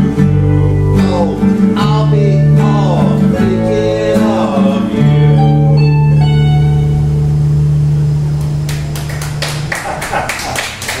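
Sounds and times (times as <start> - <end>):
guitar chord ringing: 0.0 - 9.7
people clapping: 8.4 - 11.0.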